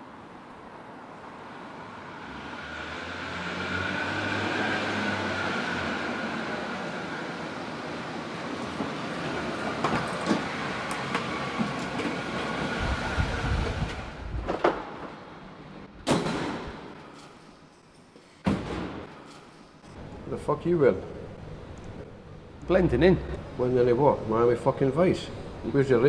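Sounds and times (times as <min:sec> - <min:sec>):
car engine and tyres echoing: 0:00.0 - 0:26.0.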